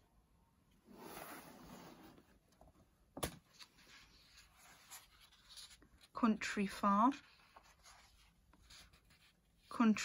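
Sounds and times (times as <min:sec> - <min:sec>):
paper page turning: 0:03.5 - 0:06.1.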